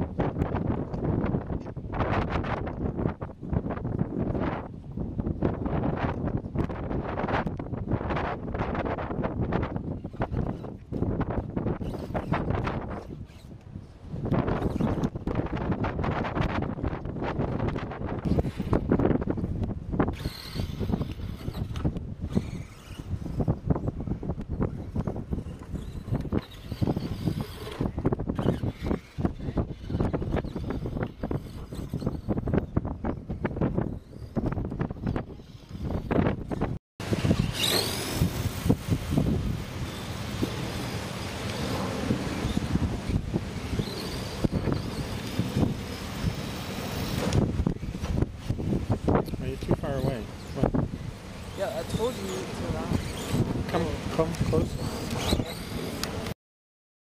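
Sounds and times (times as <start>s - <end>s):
wind buffeting microphone: 0.0s - 56.4s.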